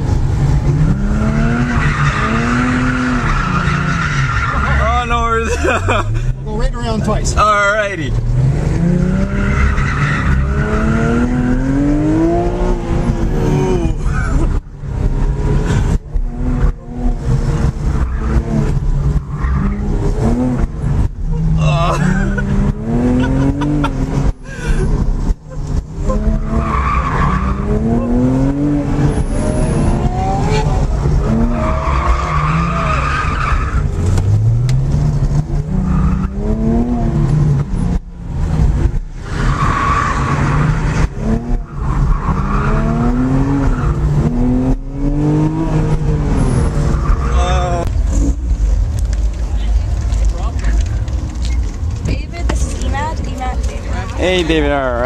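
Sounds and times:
tires squealing: 0:00.0 - 0:37.9, 0:38.5 - 0:55.0
car engine revving: 0:00.0 - 0:55.0.

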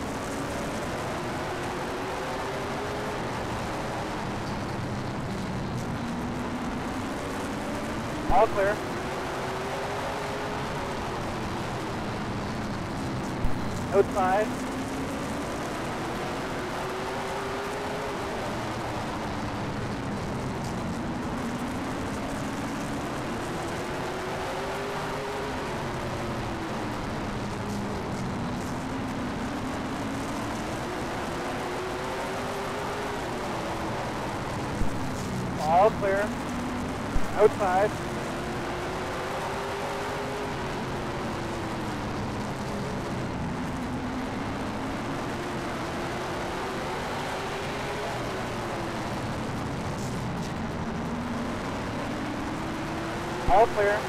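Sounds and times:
race car engine at speed: 0:00.0 - 0:54.0
radio voice: 0:08.3 - 0:08.8, 0:13.8 - 0:14.5, 0:35.6 - 0:36.3, 0:37.2 - 0:38.0, 0:53.4 - 0:54.0.

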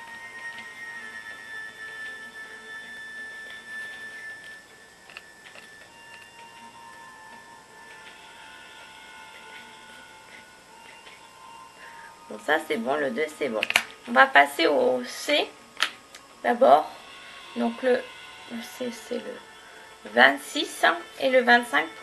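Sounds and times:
faint held-tone music: 0:00.0 - 0:22.0.

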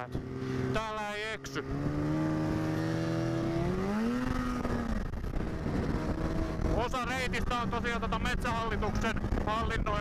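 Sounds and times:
snowmobile engine revving: 0:00.0 - 0:10.0.

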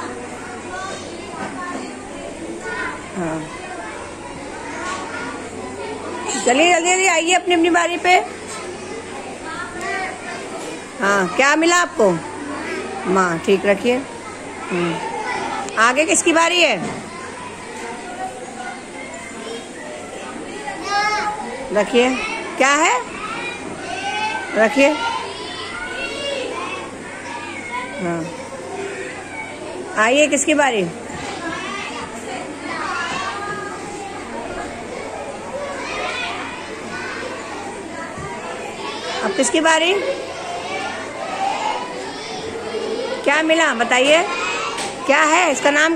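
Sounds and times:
children chattering: 0:00.0 - 0:45.9.

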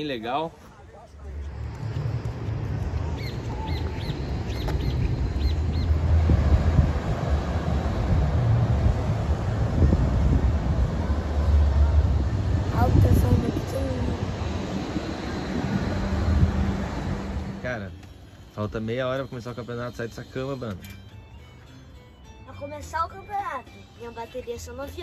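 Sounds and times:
wind buffeting microphone: 0:01.4 - 0:17.6.

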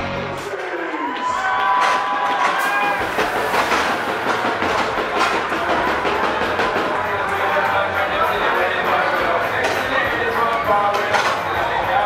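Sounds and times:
music: 0:00.0 - 0:00.6, 0:01.2 - 0:12.0
crowd hubbub: 0:00.0 - 0:12.0.

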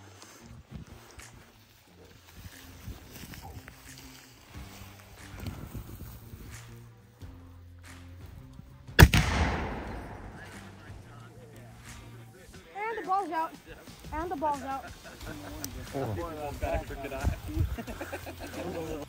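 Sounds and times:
small cannon firing bang: 0:09.0 - 0:10.6.

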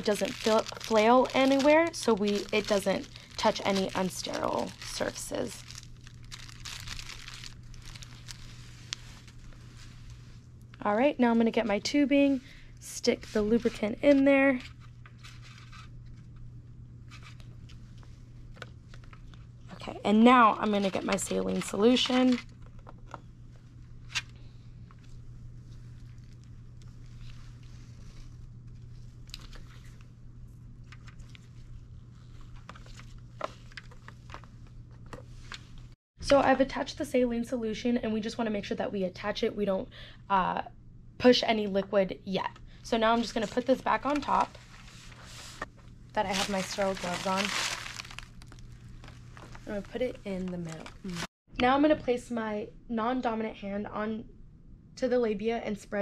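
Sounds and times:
plastic sleeve crinkling: 0:00.0 - 0:10.2, 0:20.5 - 0:23.2, 0:24.0 - 0:30.0, 0:30.8 - 0:36.0, 0:43.1 - 0:51.3
steady low hum: 0:00.0 - 0:56.0.

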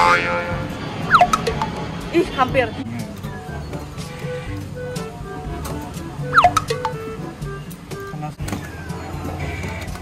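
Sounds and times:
beeping game music: 0:00.6 - 0:01.8, 0:06.2 - 0:07.2.

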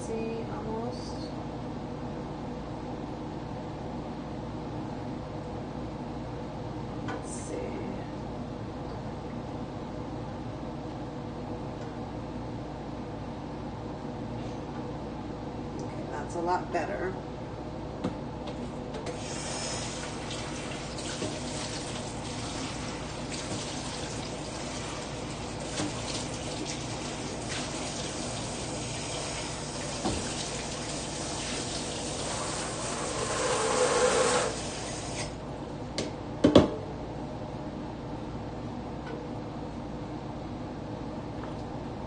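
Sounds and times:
kitchen tap running into sink: 0:19.1 - 0:35.3.

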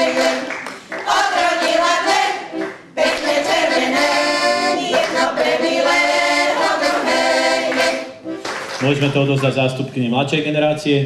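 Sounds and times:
women singing folk song together: 0:00.0 - 0:08.2.

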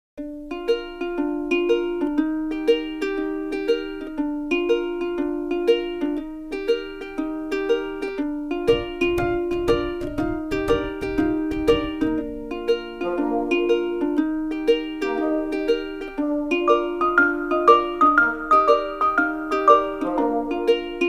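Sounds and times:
plucked-string tune: 0:00.2 - 0:21.0
low beat: 0:07.8 - 0:21.0.

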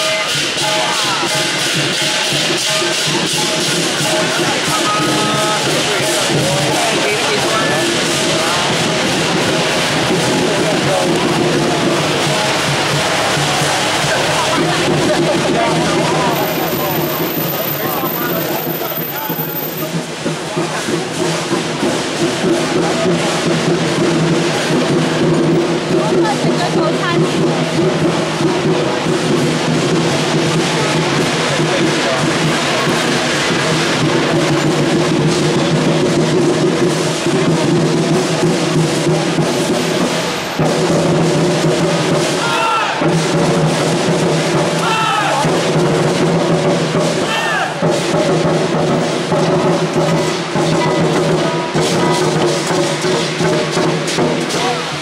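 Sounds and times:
drum gongs and cymbals percussion: 0:00.0 - 0:55.0.

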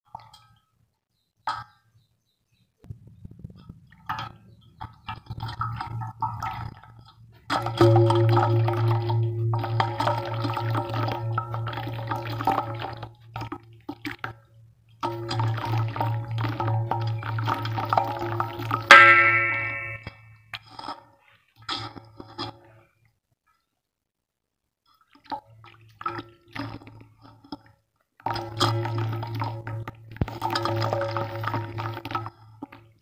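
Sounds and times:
muddy water splashing: 0:04.0 - 0:14.4, 0:15.0 - 0:20.0
bright ringing clink: 0:18.9 - 0:20.1.

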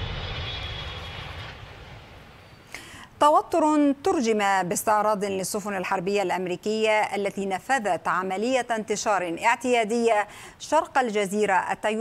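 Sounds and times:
faint high whine: 0:00.0 - 0:03.0.

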